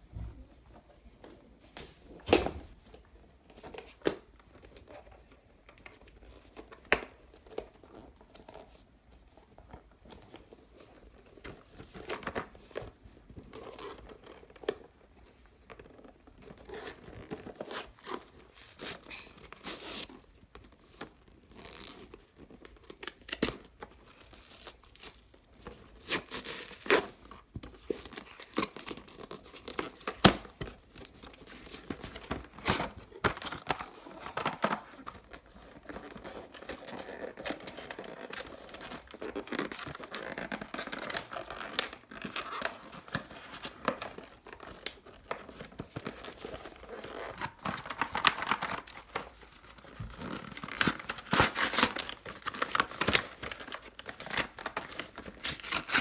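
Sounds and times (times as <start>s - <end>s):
packaging rustling and tearing: 2.7s - 56.0s.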